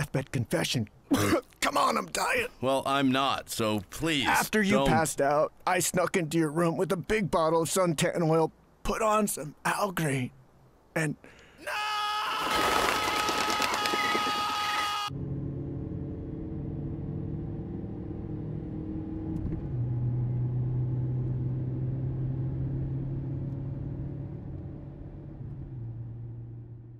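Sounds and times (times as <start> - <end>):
car interior engine drone: 15.1 - 26.9.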